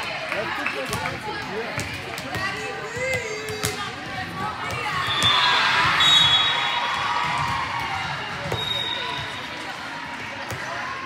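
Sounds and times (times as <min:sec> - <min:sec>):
crowd chatter: 0:00.0 - 0:11.0
volleyball bouncing on floor: 0:00.8 - 0:06.4, 0:07.2 - 0:08.8.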